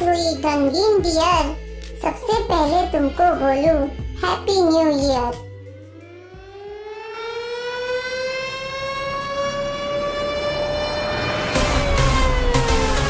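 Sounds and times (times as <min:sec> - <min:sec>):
siren-like gliding tone: 0:05.6 - 0:13.0.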